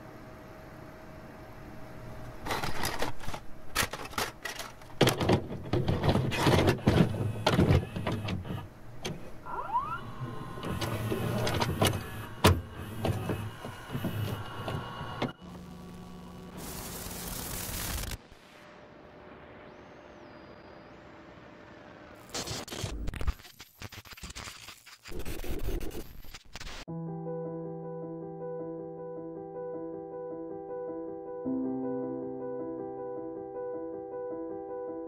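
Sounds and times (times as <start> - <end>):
tape mechanism clicks and clunks: 2.4 - 15.4
motor whine: 6.8 - 22.2
tape hiss: 8.5 - 23.2.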